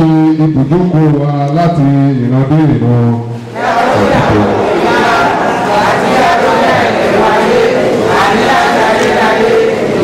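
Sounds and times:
man chanting into a microphone: 0.0s - 3.4s.

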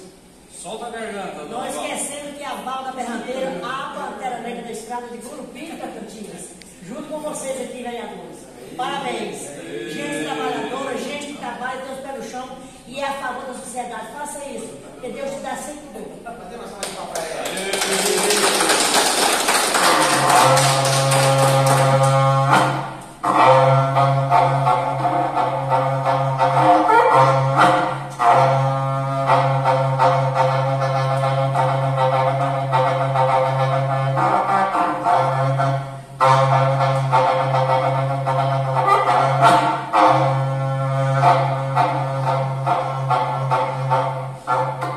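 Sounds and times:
horn blown in long low calls: 19.8s - 44.9s.

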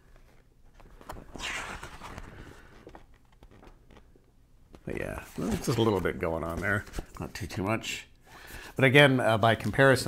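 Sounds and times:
page turning rustle: 0.1s - 4.2s, 5.2s - 7.4s.

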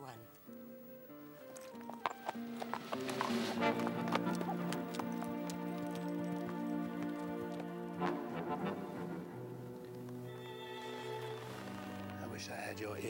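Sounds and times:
horse hooves clip-clopping: 1.1s - 12.3s
orchestral film score: 1.1s - 13.0s.

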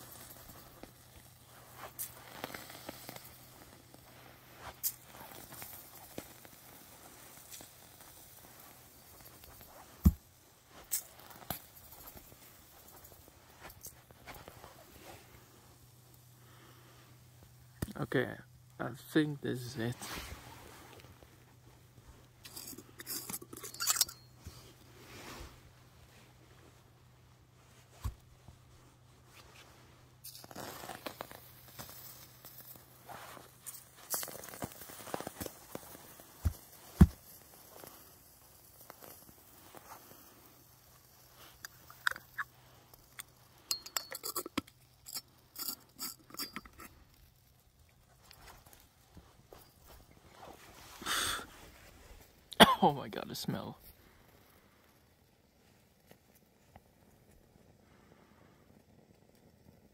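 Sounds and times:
burning grass crackling: 0.0s - 59.9s.

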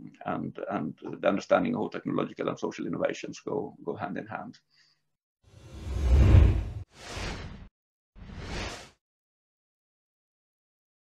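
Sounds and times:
whoosh sound effects: 5.7s - 7.7s.

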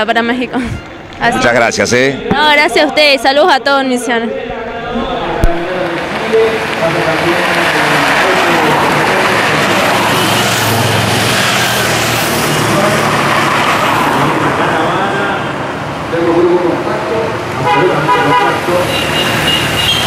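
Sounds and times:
background voices: 1.1s - 17.6s
rush of engine and road noise: 4.4s - 20.0s.

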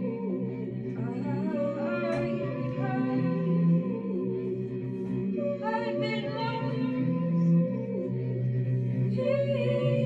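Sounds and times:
woman singing in harmony: 0.0s - 10.0s.

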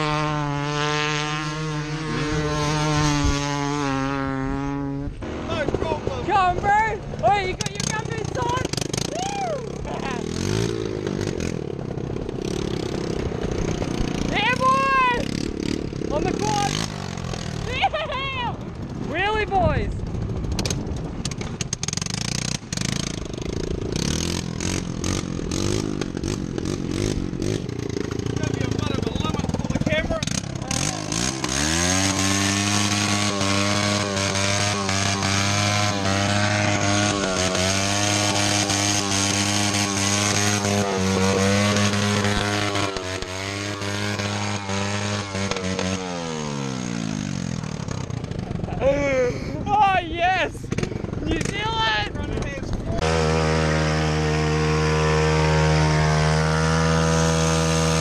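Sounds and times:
quad bike engine revving: 0.0s - 58.0s.

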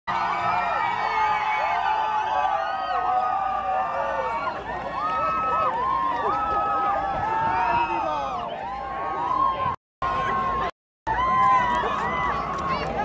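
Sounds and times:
crowd shouting and cheering: 0.1s - 13.0s.

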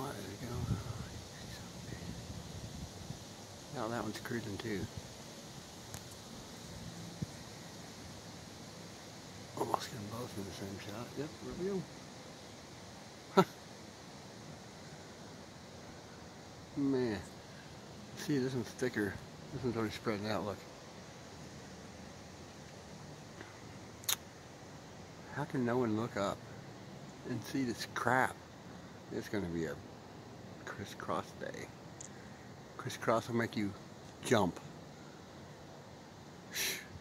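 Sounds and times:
faint outdoor hiss: 0.0s - 37.0s
steady background noise: 0.0s - 37.0s
faint click: 5.9s - 6.2s, 23.4s - 24.3s, 32.0s - 32.2s.

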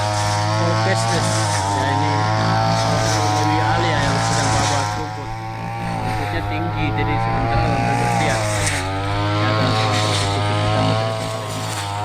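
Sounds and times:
brush cutter cutting grass: 0.0s - 12.0s.

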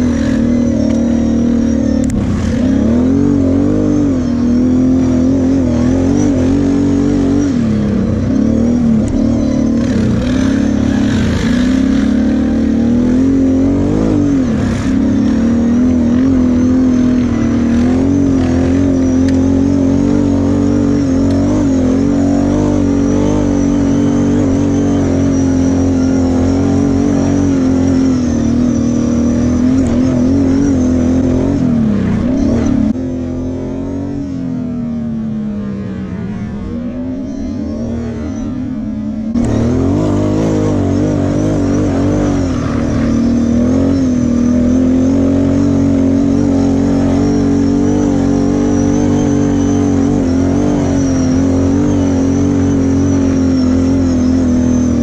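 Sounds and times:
quad engine revving: 0.0s - 55.0s.

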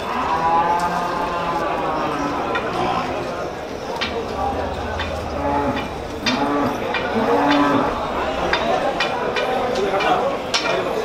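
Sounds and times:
cow lowing: 1.1s - 8.9s.

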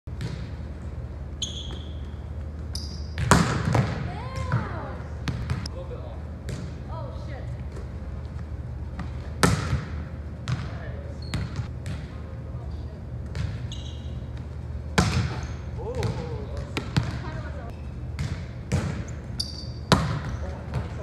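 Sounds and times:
ball knocking on gym floor: 3.2s - 5.7s
volleyball smacks: 3.2s - 5.7s, 9.0s - 10.8s.

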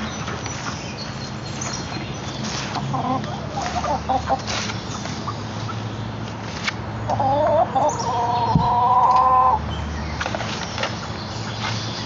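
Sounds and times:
chicken clucks: 2.5s - 5.8s, 7.1s - 9.6s.

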